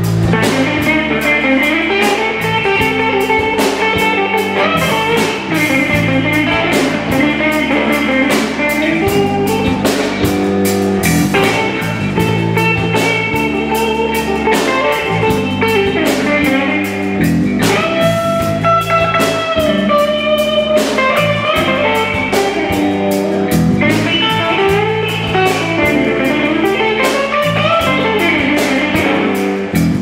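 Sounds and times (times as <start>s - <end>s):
drum kit beat: 0.0s - 30.0s
electric bass: 0.0s - 30.0s
electric guitar lead: 0.0s - 30.0s.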